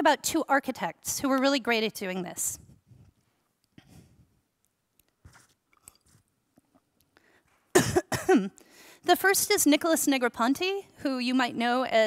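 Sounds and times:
woman sipping and swallowing: 5.6 - 6.9
woman coughing: 7.7 - 8.6.

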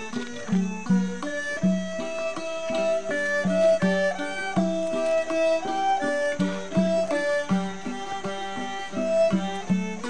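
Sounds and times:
bowed fiddle holding notes: 0.0 - 10.0
plucked lutes playing quick runs: 0.0 - 10.0.

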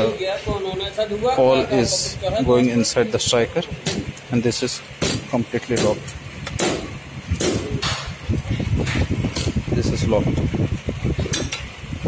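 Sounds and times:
low rumbling handling noise: 0.4 - 12.0.

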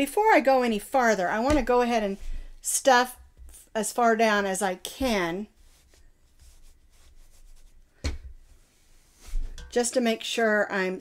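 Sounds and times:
rustling and rubbing of stuffing: 5.1 - 9.8.

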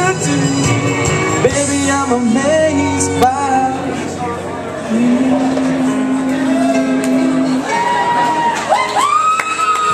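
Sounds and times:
man singing through pa: 0.0 - 7.7
karaoke backing track: 0.0 - 9.9.

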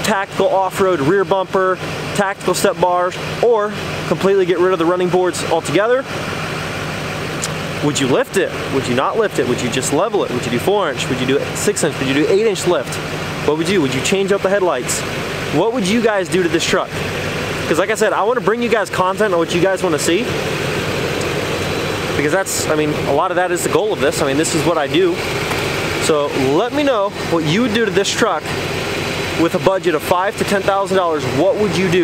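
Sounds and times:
truck engine idling: 0.0 - 32.0.

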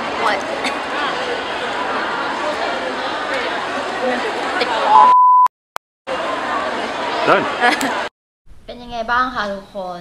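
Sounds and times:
restaurant hubbub: 0.0 - 5.2, 6.1 - 8.1
electronic beep: 4.9 - 5.5.

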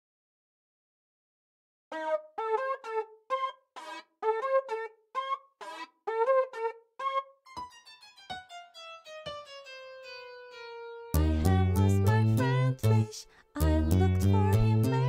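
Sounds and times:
bouncy keyboard melody: 1.9 - 15.0.

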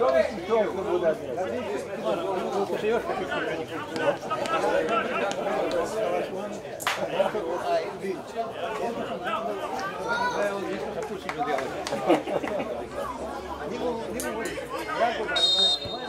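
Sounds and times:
voices talking and calling out: 0.0 - 16.0.

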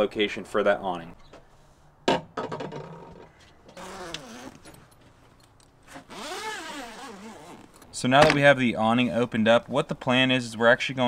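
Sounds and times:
rasping pull of fabric: 5.9 - 7.7.

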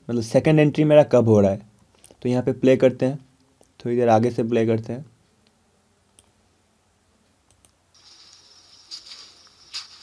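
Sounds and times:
steady high-pitched hiss: 0.0 - 10.0
faint mouse clicks: 5.4 - 6.4, 7.2 - 7.8.

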